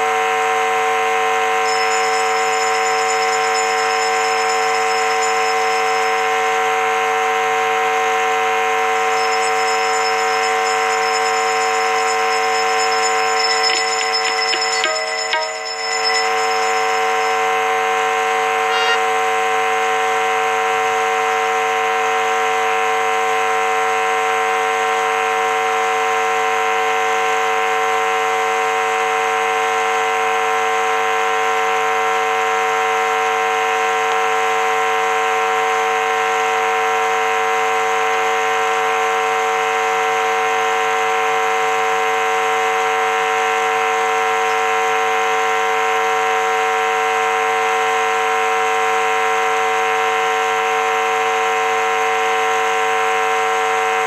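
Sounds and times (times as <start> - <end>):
steady drone of held tones: 0.0 - 23.6
high thin ringing: 1.6 - 6.5, 9.0 - 17.9, 18.6 - 19.0.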